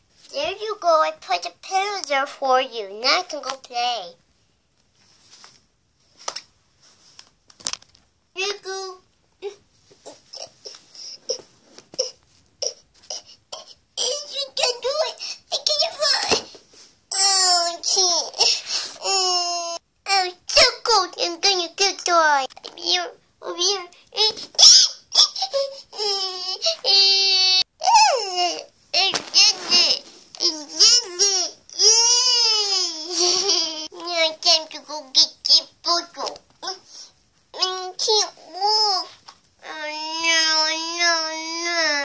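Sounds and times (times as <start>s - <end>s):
small child whimpering: 24.3s - 33.9s.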